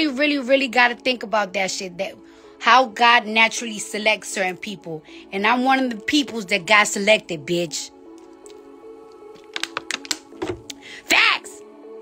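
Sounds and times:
soft background music: 0.0s - 12.0s
plastic bottle clicks and crinkles: 9.3s - 10.8s.

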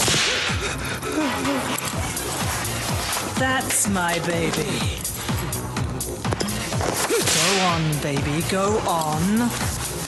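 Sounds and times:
whip crack: 0.0s - 0.6s, 6.8s - 7.7s.

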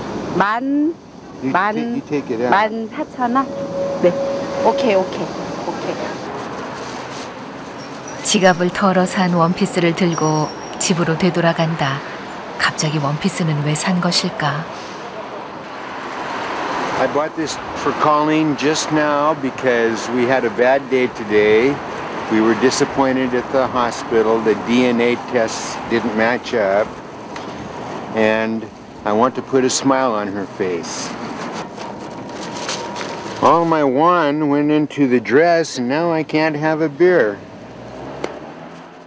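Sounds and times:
passing vehicles: 0.0s - 39.0s
street traffic hiss: 0.0s - 39.0s
faint steady high tone: 1.7s - 6.3s.

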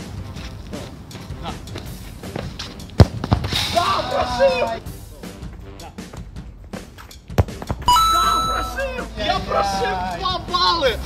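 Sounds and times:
football kicked thud: 3.0s - 3.6s, 7.3s - 7.9s
musical sound effect: 7.9s - 9.2s.

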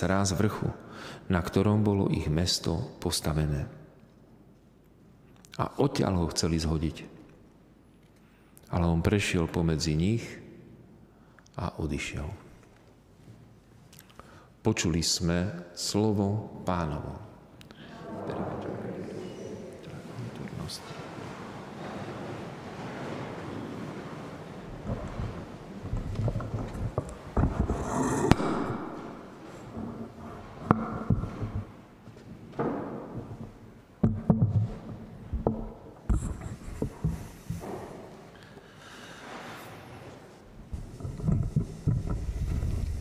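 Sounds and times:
people sitting on wooden seats: 17.7s - 33.9s.

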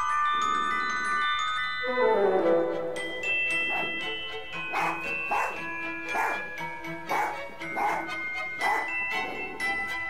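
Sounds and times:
music with held ringing tones: 0.0s - 10.0s
dog barking: 3.7s - 4.0s, 4.7s - 6.5s, 7.1s - 9.0s.

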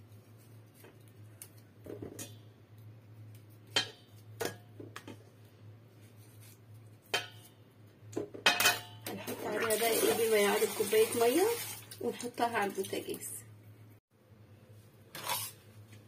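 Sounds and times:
kitchenware knocks and clinks: 8.2s - 9.2s.

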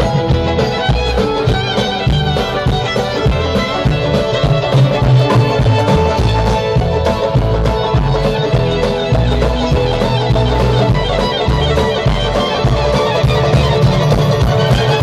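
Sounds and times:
electric guitar: 0.0s - 15.0s
steady beat: 0.0s - 15.0s
upright bass: 0.0s - 15.0s.

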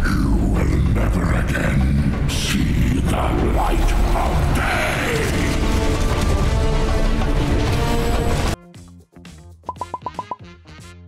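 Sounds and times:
dramatic film music: 0.0s - 11.0s.

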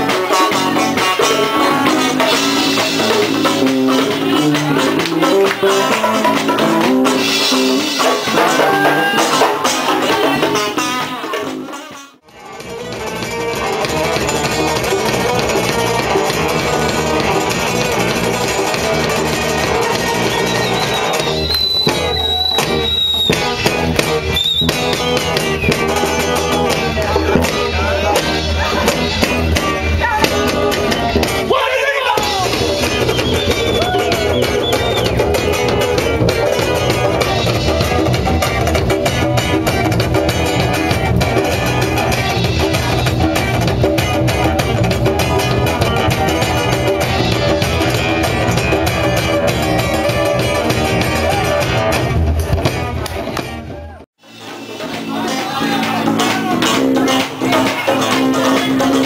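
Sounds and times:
electric bass: 0.0s - 11.7s, 12.3s - 31.6s, 32.2s - 59.0s
congas: 0.0s - 31.5s, 32.2s - 59.0s
funk band playing: 0.0s - 59.0s.

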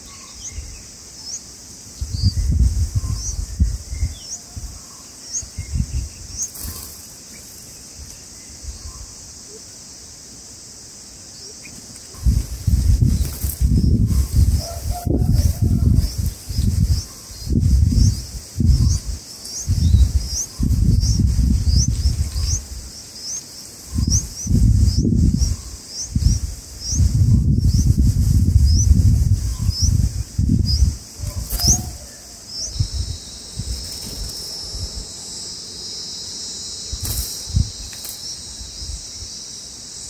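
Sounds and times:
bird chirping: 0.0s - 9.6s, 13.0s - 28.0s, 28.6s - 39.4s
high insect buzz: 0.0s - 40.0s.

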